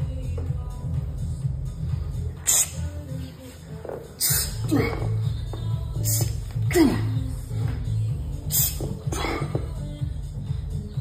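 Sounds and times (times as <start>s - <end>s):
gym music with heavy bass: 0.0s - 11.0s
low grunt: 4.6s - 5.2s.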